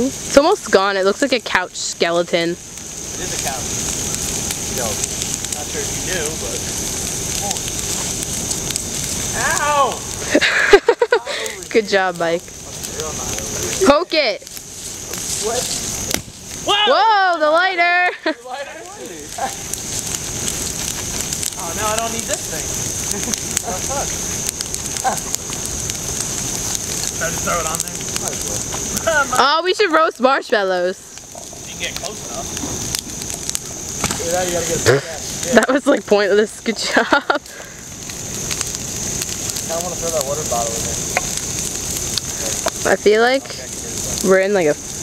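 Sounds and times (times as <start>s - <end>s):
bonfire crackling: 0.0s - 45.0s
flames rushing: 0.0s - 45.0s
person laughing: 10.2s - 11.7s, 23.0s - 23.9s, 36.7s - 37.5s.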